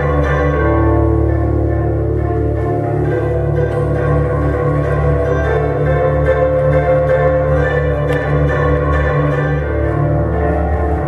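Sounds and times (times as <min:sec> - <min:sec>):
plucked bandura chords: 0:00.0 - 0:11.0.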